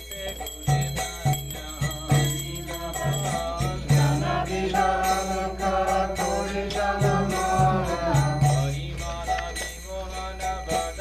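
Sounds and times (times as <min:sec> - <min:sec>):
hand cymbals ringing: 0:00.0 - 0:11.0
voices singing chanted melody: 0:00.0 - 0:11.0.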